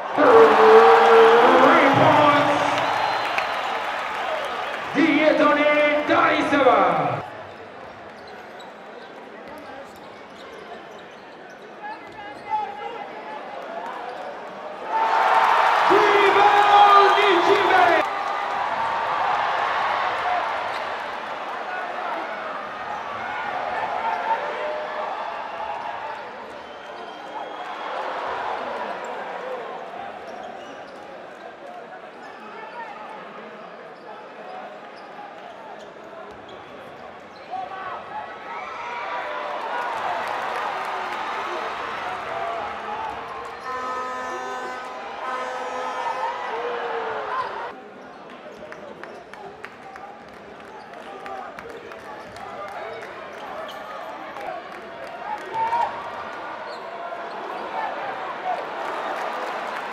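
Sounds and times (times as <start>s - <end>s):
crowd shouting: 0.0s - 7.2s, 14.8s - 20.8s
arena crowd chatter: 0.0s - 59.9s
loud voice: 0.2s - 2.9s, 4.9s - 7.2s, 15.9s - 18.0s.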